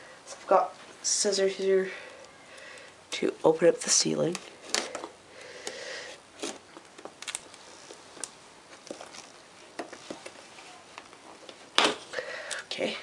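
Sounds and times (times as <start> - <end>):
cardboard clicks and rustles: 6.4 - 12.1.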